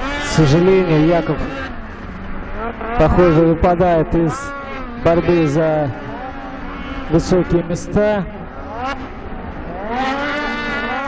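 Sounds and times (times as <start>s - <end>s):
snowmobile engine accelerating: 0.0s - 11.0s.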